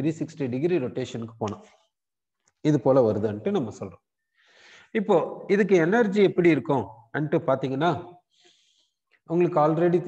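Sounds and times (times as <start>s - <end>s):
man lecturing: 0.0s - 1.8s, 2.6s - 4.0s, 4.9s - 8.2s, 9.3s - 10.0s
faint intake of breath: 4.2s - 4.9s.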